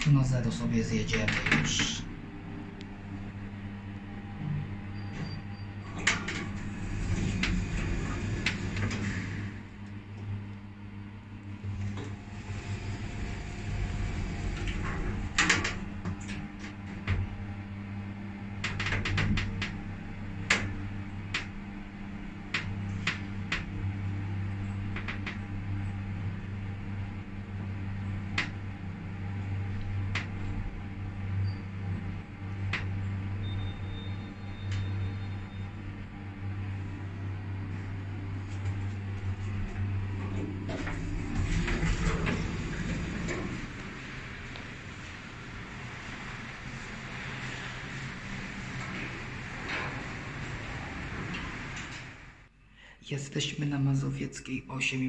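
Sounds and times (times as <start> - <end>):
lift humming and rushing: 0.0 - 52.5.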